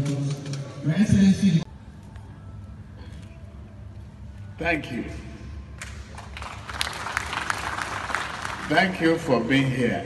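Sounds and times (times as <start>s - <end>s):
audience clapping: 5.8s - 9.0s.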